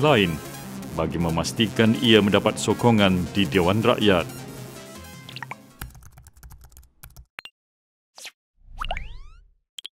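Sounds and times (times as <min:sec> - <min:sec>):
keyboard typing clicks: 0:05.3 - 0:07.3.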